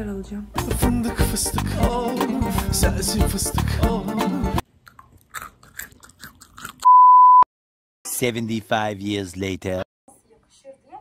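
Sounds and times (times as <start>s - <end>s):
person chewing crunchy nuts: 4.6s - 6.9s
loud electronic beep: 6.9s - 7.5s.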